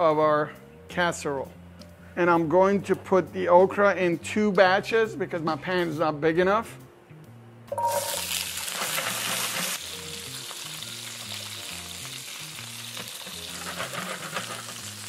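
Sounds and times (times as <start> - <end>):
food sizzling in hot oil: 7.7 - 15.0.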